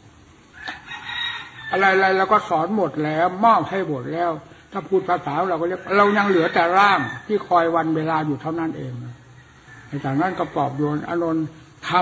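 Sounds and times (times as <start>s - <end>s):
rooster crowing faintly: 0.5s - 2.5s, 5.6s - 7.8s, 8.7s - 12.0s
man's voice: 1.8s - 9.2s, 10.0s - 12.0s.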